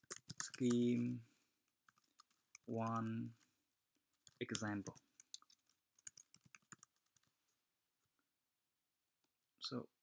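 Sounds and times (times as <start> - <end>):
keyboard typing: 0.0 - 7.4.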